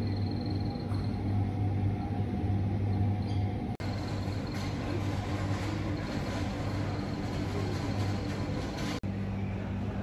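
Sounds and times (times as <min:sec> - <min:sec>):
ventilation noise: 0:00.0 - 0:10.0.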